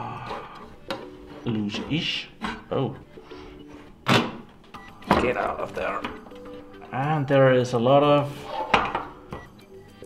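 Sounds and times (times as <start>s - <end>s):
parts knocking on wooden desk: 8.7s - 9.5s.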